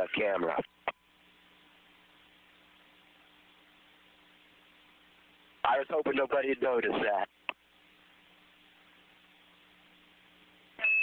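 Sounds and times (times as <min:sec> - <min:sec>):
radio hiss and low hum: 0:00.0 - 0:10.8
short high beep: 0:10.8 - 0:11.0.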